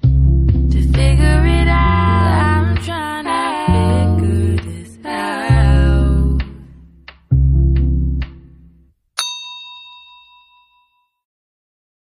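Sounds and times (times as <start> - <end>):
song with bass and beat: 0.0 - 8.9
bright bell-like ding: 9.2 - 11.2.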